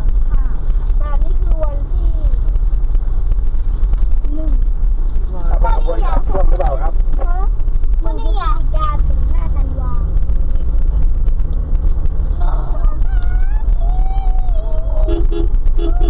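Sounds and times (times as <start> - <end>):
car engine and road rumble: 0.0 - 16.0
person talking: 5.4 - 10.7.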